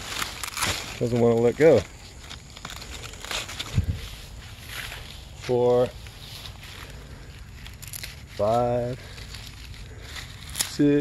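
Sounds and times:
stiff leaves crackling and rustling: 0.0 - 11.0.

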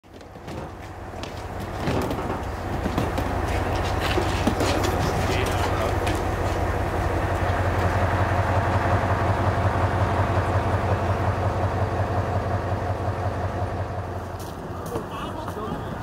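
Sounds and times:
diesel engine droning: 0.1 - 16.0.

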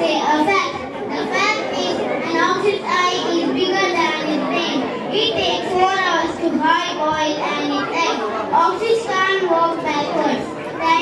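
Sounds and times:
boy speaking into a microphone: 0.0 - 11.0.

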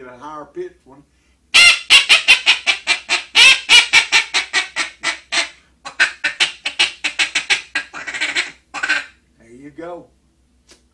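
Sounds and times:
duck call high peeping notes: 1.5 - 9.2.

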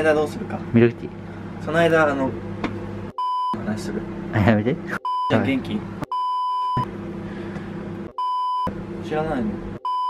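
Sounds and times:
microwave oven humming: 0.0 - 10.0
censor bleep: 3.2 - 3.6, 6.1 - 6.9, 8.2 - 8.7.

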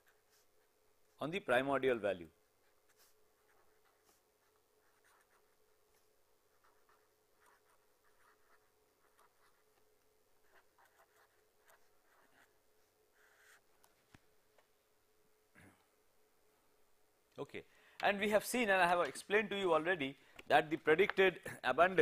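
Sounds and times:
faint steady hum: 0.0 - 22.0
pen scratching on paper: 2.6 - 13.7.

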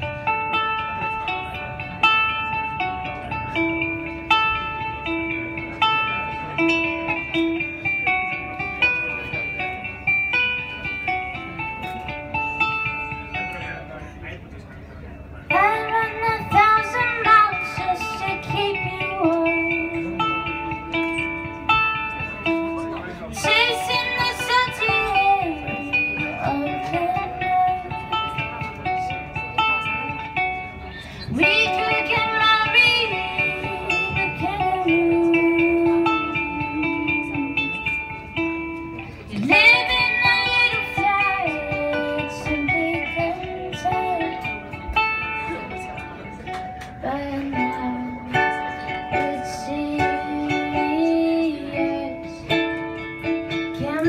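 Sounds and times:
ukulele plucked notes: 0.0 - 14.6, 15.2 - 54.0
person singing: 31.2 - 38.2, 47.0 - 54.0.

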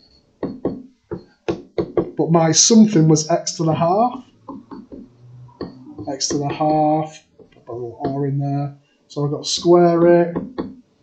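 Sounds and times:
stylus tapping on tablet: 0.4 - 2.2, 4.1 - 8.2, 10.3 - 10.8.

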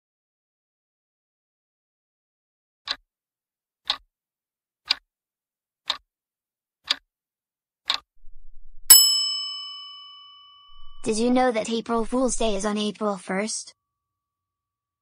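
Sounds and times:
timer ticks: 3.8 - 4.0, 4.8 - 5.0, 5.8 - 6.0, 6.8 - 7.0, 7.9 - 8.1
bright bell ding: 8.9 - 11.2.

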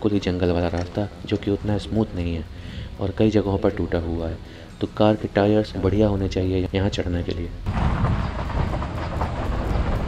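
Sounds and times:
tyre rumble and road noise: 7.6 - 10.0
suspension knocks and jolts: 7.7 - 10.0.

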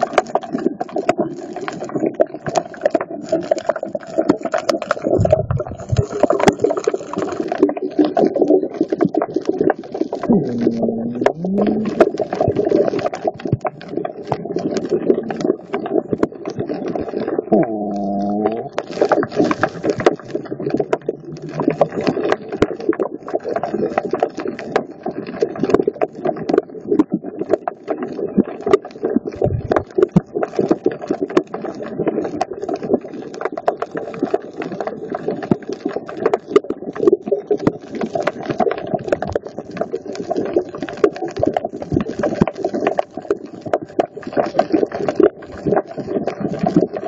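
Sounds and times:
underwater crackle of clicks: 0.0 - 47.0
muffled low water wash: 5.2 - 6.6, 10.2 - 12.6, 29.4 - 29.9.

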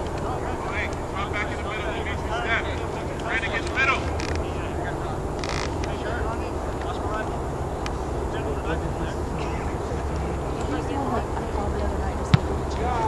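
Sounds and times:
people calling out: 0.0 - 13.0
steady low rumble: 0.0 - 13.0.

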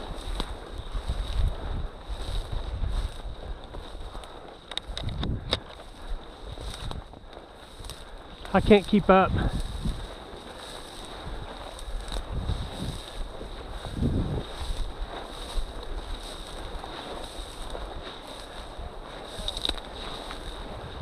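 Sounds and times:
dry weed stalks swishing: 0.0 - 5.0, 5.7 - 21.0
wind rumbling on microphone: 0.0 - 21.0.

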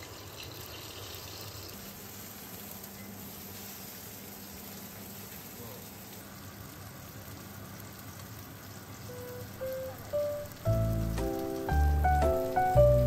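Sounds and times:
food sizzling in oil: 0.0 - 13.0
background music: 9.2 - 13.0.

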